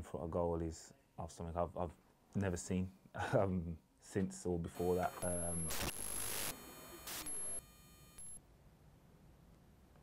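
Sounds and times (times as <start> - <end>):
electronic beep: 4.8 - 8.4.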